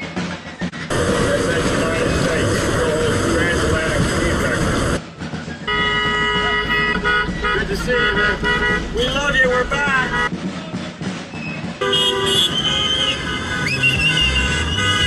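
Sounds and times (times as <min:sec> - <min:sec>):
traffic noise: 0:00.0 - 0:15.0
indistinct voices: 0:00.9 - 0:05.0
vehicle horn sounding: 0:05.7 - 0:10.3, 0:11.8 - 0:15.0.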